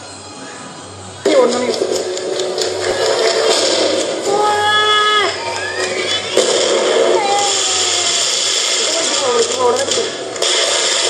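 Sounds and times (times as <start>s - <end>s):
firework crackles: 1.2s - 11.0s
firework fountain hissing: 1.4s - 11.0s
people calling out: 4.2s - 8.6s.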